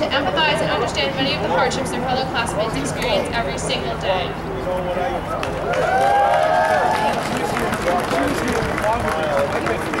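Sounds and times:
speech over public-address system: 0:00.0 - 0:05.3
crowd voices: 0:00.0 - 0:10.0
outdoor background noise: 0:00.0 - 0:10.0.

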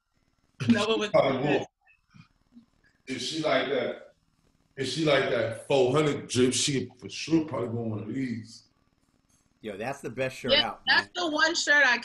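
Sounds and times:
loud voice burst: 0:00.6 - 0:01.6, 0:03.1 - 0:03.9, 0:04.8 - 0:08.5, 0:09.7 - 0:11.2.

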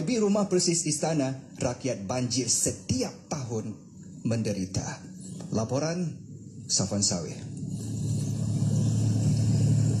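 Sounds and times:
engine running: 0:07.4 - 0:10.0.

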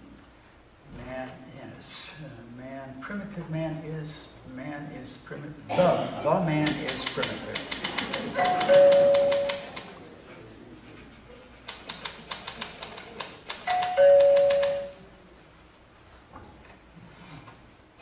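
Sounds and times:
typewriter keys clacking: 0:06.6 - 0:10.0, 0:11.6 - 0:15.0
two-note doorbell chime: 0:08.5 - 0:09.7, 0:13.7 - 0:15.0.

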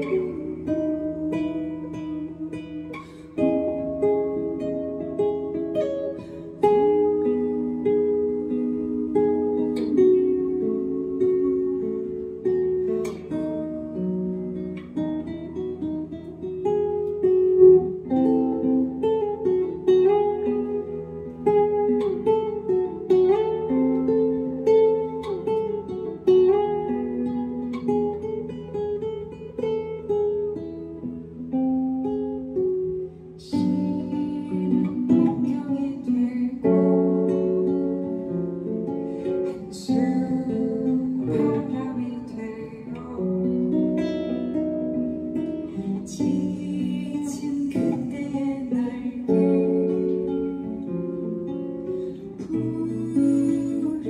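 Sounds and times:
woman singing: 0:00.0 - 0:29.6, 0:32.5 - 0:54.0
acoustic guitar plucking: 0:00.0 - 0:54.0.

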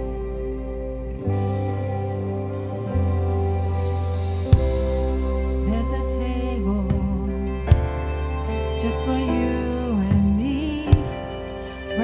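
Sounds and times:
guitars: 0:00.0 - 0:12.0
keyboard chords: 0:00.0 - 0:12.0
low bass note: 0:00.0 - 0:12.0.

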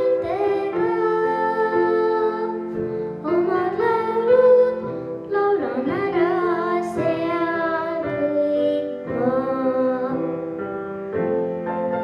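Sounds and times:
girl singing into microphone: 0:00.0 - 0:10.7
instrumental accompaniment: 0:00.0 - 0:12.0.

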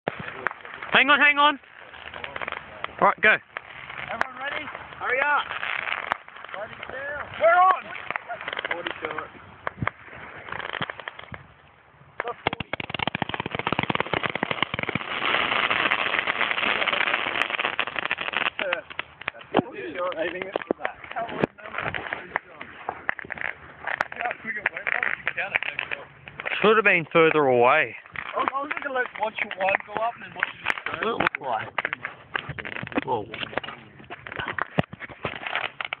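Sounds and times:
firework bangs and crackle: 0:00.0 - 0:36.0.

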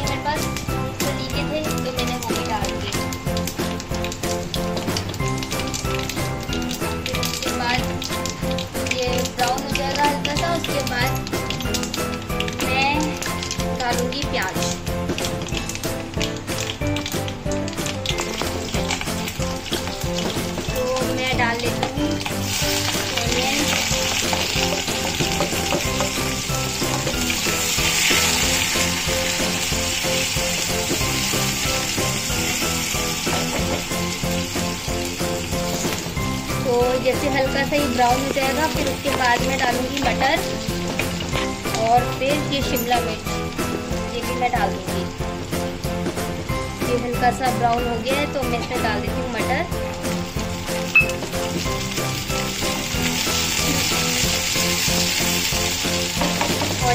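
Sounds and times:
background music: 0:00.0 - 0:56.9
onions sizzling in oil: 0:00.0 - 0:56.9
seeds crackling in hot oil: 0:00.0 - 0:56.9.

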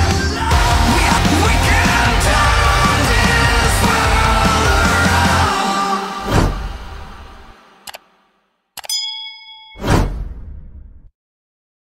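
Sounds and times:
loud music: 0:00.0 - 0:07.8
bell-like ding: 0:08.8 - 0:10.2.

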